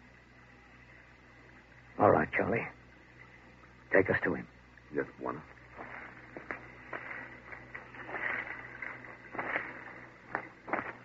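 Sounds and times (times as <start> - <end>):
recording hiss: 0.0 - 11.0
footsteps rustling through grass: 5.5 - 11.0.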